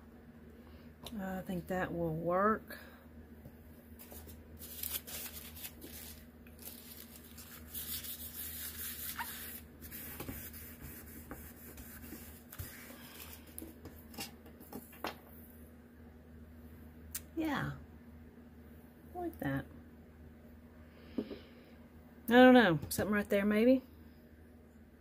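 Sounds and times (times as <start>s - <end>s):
low steady hum: 0.0s - 25.0s
tissue rubbing on photo paper: 4.0s - 13.4s.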